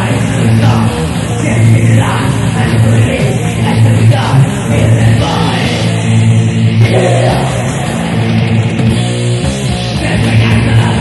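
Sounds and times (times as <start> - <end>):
distorted electric guitar and bass: 0.0 - 11.0.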